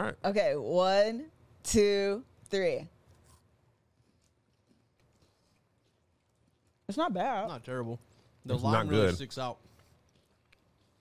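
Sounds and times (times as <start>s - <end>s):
people chewing chocolate wafer: 3.1s - 7.1s, 7.8s - 11.0s.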